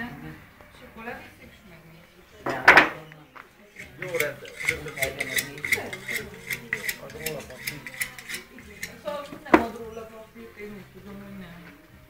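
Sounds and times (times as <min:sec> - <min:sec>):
knife strokes on carcass: 0:03.7 - 0:09.2.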